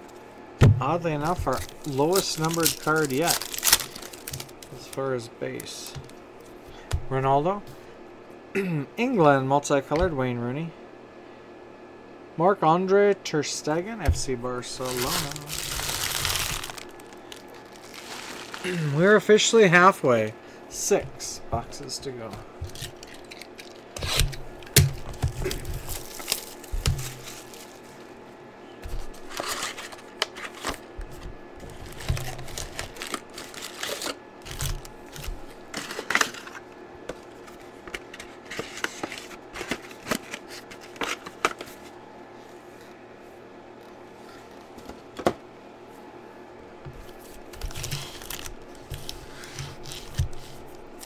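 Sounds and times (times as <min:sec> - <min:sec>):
foil card packs rustling and tearing: 0:01.0 - 0:06.6, 0:14.6 - 0:19.2, 0:22.6 - 0:28.1, 0:29.0 - 0:41.9, 0:47.0 - 0:51.0.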